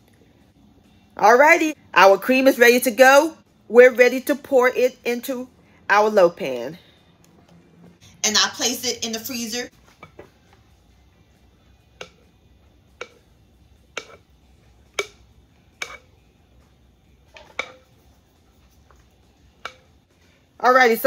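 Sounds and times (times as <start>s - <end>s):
bowl and utensil knocking: 12.0s - 12.3s, 13.0s - 13.3s, 13.9s - 14.2s, 14.9s - 15.2s, 15.8s - 16.1s, 17.3s - 18.0s, 19.6s - 19.9s.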